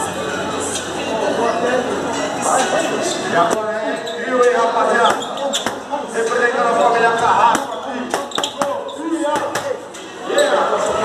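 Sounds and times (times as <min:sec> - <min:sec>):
boxing gloves punching focus mitts: 0:07.4 - 0:09.8.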